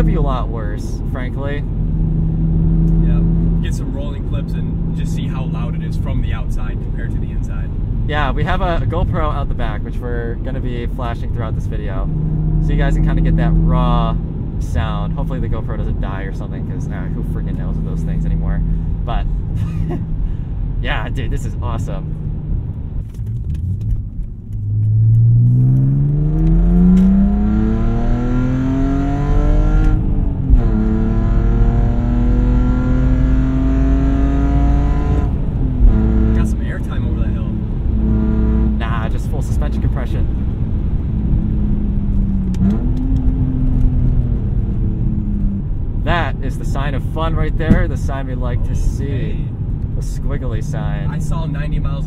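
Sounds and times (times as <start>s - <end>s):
loud car engine revving through gears: 0.0s - 6.1s, 11.8s - 19.0s, 24.6s - 48.1s.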